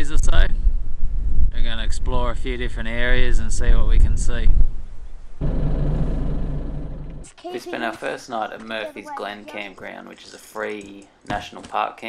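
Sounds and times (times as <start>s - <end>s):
vehicle engine and road rumble: 5.4s - 7.4s.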